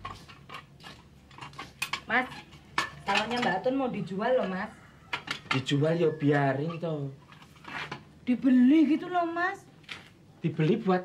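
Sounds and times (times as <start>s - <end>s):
clinks of household items handled: 0.0s - 5.8s.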